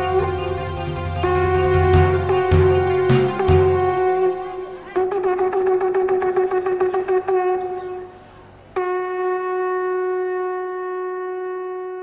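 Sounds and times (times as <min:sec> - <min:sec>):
ram's horn staccato pulses: 0:00.0 - 0:08.0.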